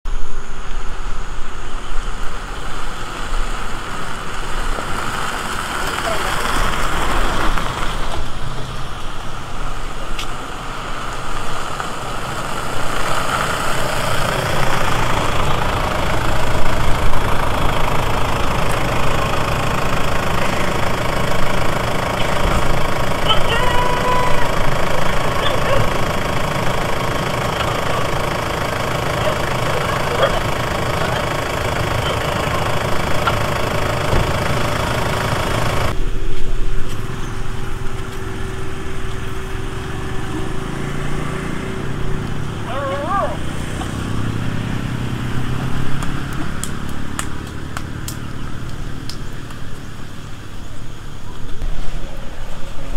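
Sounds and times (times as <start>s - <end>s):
vehicle engines running: 0.1s - 52.9s.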